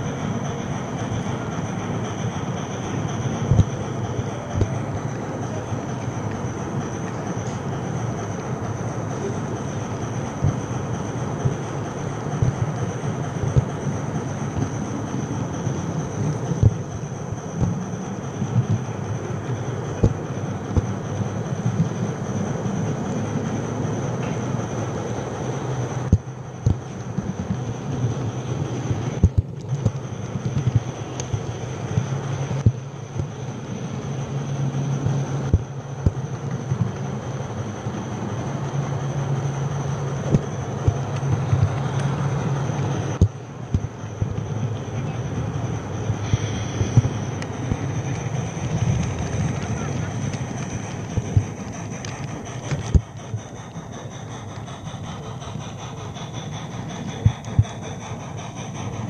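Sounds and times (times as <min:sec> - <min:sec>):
model train motor hum: 0:00.0 - 0:59.0
thin high whine: 0:00.0 - 0:59.0
wheels clicking on rails: 0:00.0 - 0:59.0.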